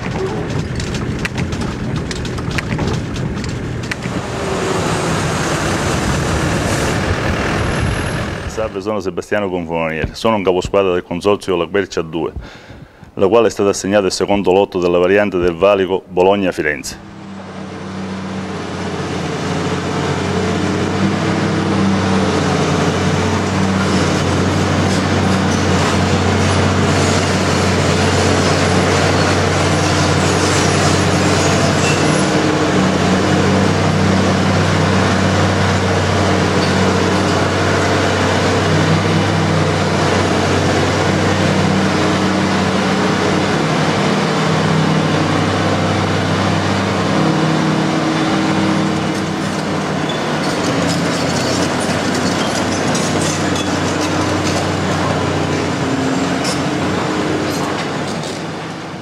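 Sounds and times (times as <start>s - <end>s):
hydraulic breaker hammering rock: 0.0s - 4.2s, 22.9s - 42.4s, 48.2s - 58.6s
diesel engine drone: 0.0s - 59.0s.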